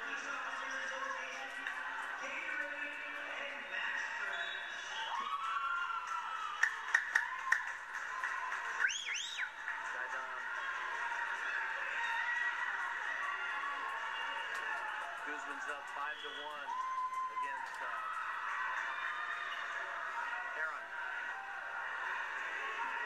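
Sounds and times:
crowd hubbub through tv speaker: 0.0 - 23.0
sharp claps or knocks: 6.6 - 8.1.

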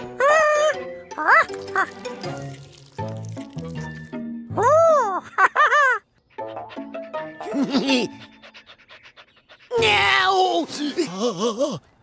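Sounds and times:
cartoon dog panting: 6.2 - 9.8.

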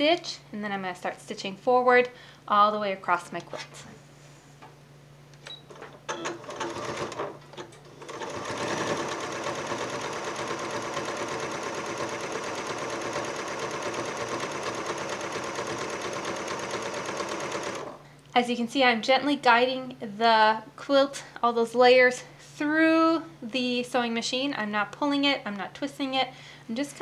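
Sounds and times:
sewing machine stitching: 5.7 - 18.0.

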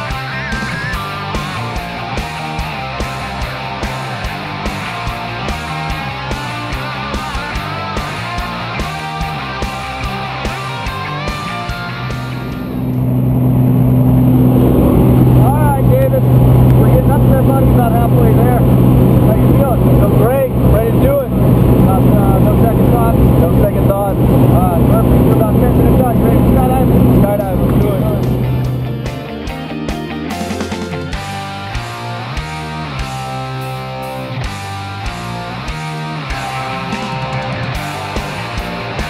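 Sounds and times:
small plane engine drone: 9.6 - 35.4.

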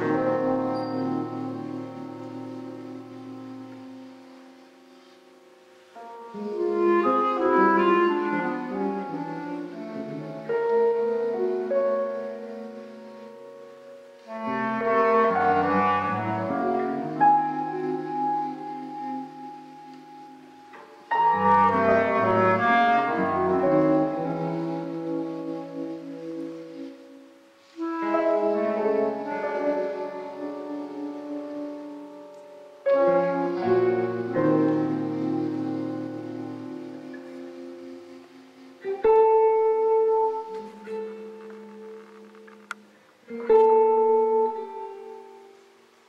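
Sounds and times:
chamber jazz ensemble: 0.0 - 46.0
improvised guitar piano clarinet music: 0.0 - 46.0.

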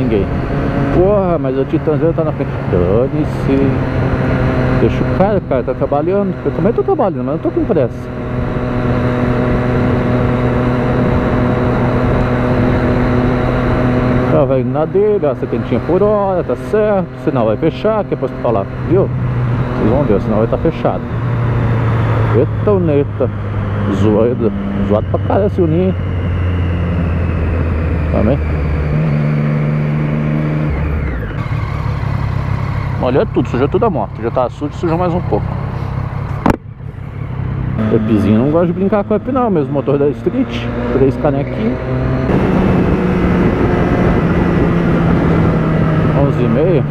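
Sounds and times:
motorcycle engine cruising: 0.0 - 46.9
wind and road rush: 0.0 - 46.9
wind noise: 41.8 - 46.9.

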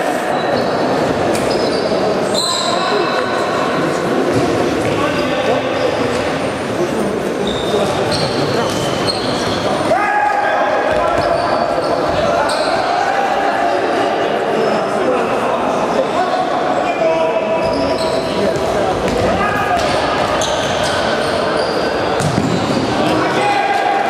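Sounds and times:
shoes squeaking on floor: 0.4 - 3.3, 4.3 - 9.9, 10.9 - 13.0, 16.8 - 23.1
ball kicked and bouncing: 22.2 - 22.6.

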